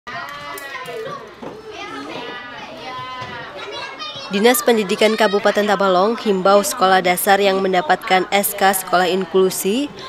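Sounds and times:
children talking and calling out: 0.1 - 10.0.

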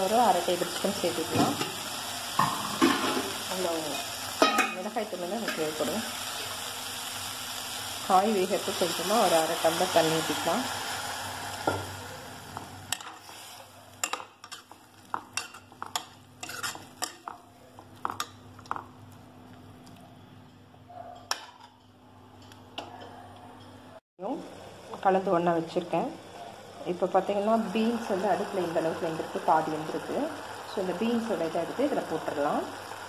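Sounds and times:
sizzle from a pot: 0.0 - 20.0, 24.2 - 33.0
metal spoon scraping a pot: 15.4 - 17.1.

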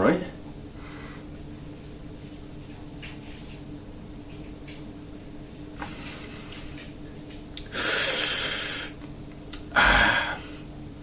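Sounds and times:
man breathing loudly: 7.7 - 9.0, 9.7 - 10.7.

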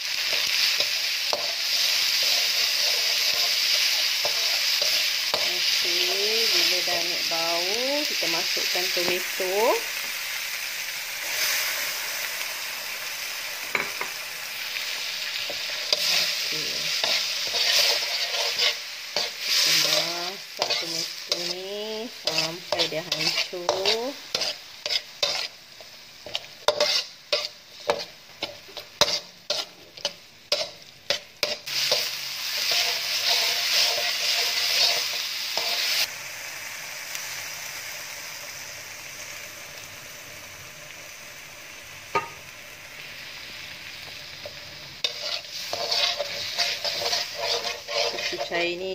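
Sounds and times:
vegetables sizzling in hot oil: 0.0 - 48.9
metal spatula scraping a wok: 0.2 - 7.5, 11.2 - 12.2, 14.8 - 36.1, 44.5 - 48.9.

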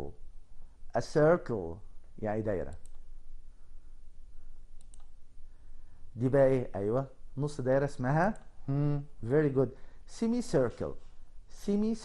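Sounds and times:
low room hum: 0.0 - 12.0
faint clicks: 4.8 - 5.2.

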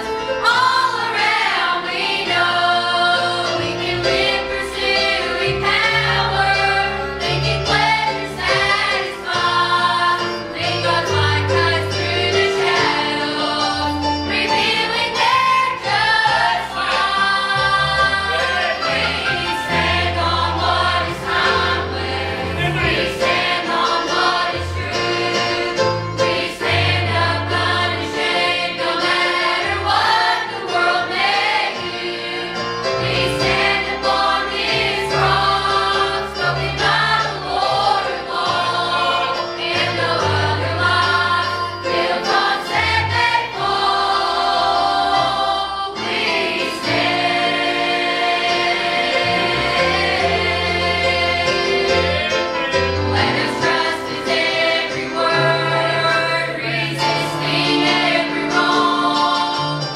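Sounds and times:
choir singing gospel: 0.0 - 59.9
instrumental accompaniment: 0.0 - 59.9.

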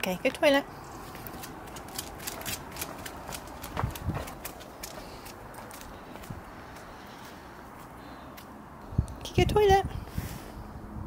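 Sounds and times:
dog claws clicking on concrete: 1.1 - 6.2.

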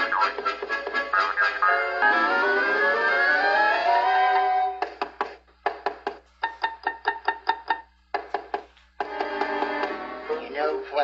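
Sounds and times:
cartoon underscore music: 0.0 - 11.0.

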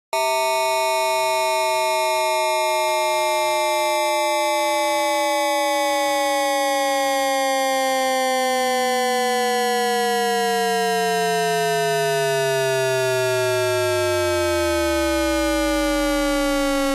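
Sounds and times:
gliding synthetic tones: 11.9 - 16.9.

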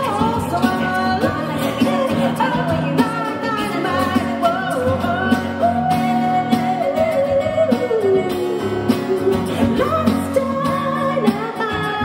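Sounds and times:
people singing pop song: 0.0 - 12.0
strummed acoustic guitar: 0.0 - 12.0.

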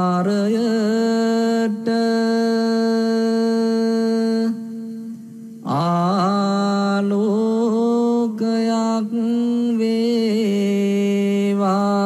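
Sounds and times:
person chanting in long notes: 5.6 - 12.0.

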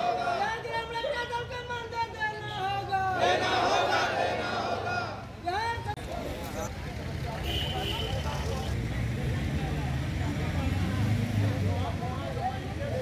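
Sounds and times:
murmur of crowd voices: 0.0 - 13.0
vehicle rumbling on road: 4.3 - 13.0.

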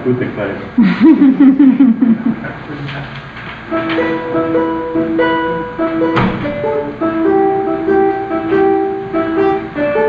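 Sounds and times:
ukulele playing: 3.7 - 10.0.

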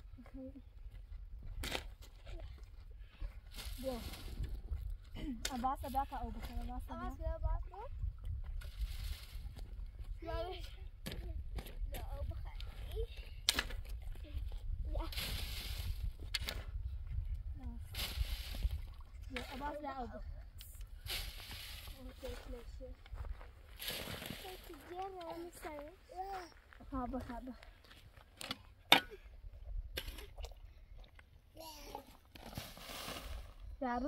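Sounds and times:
shovel digging into dry soil: 3.5 - 4.5, 8.6 - 9.5, 15.0 - 16.7, 17.9 - 19.6, 21.0 - 22.4, 23.8 - 24.7
low wind rumble: 7.0 - 19.3
children's voices: 24.2 - 26.6.

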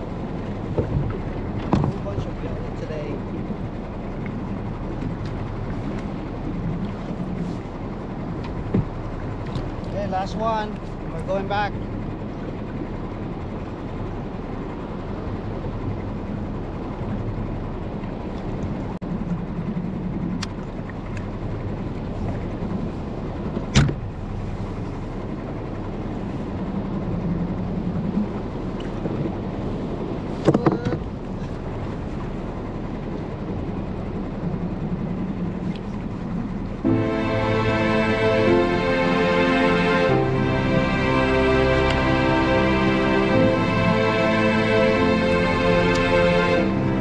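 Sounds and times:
water noise around boat: 0.0 - 47.0
wind: 0.0 - 47.0
sharp knocks on boat: 0.7 - 2.2, 8.4 - 9.7, 23.5 - 24.1, 30.4 - 31.1.

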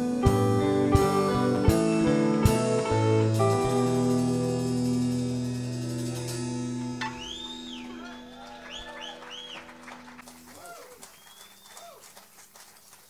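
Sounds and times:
band chord ringing out: 0.0 - 10.6
audience whooping and whistling: 7.0 - 13.0
scattered clapping: 7.0 - 13.0.

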